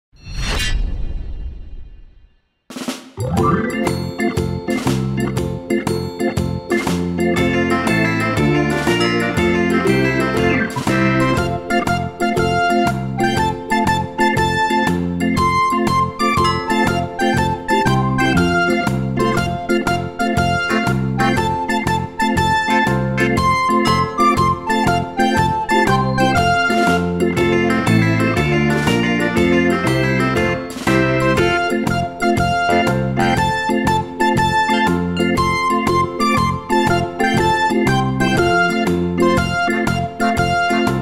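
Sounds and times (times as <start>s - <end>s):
instrumental music with steady beat: 2.7s - 41.0s.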